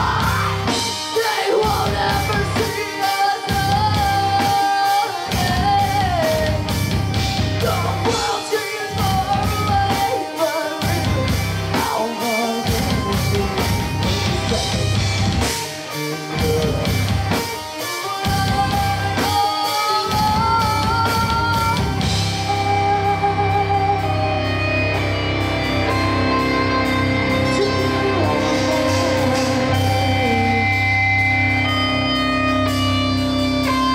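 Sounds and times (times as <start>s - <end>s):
person singing: 0.0s - 6.7s, 7.6s - 24.3s, 25.9s - 31.8s
live rock band playing: 0.0s - 33.9s.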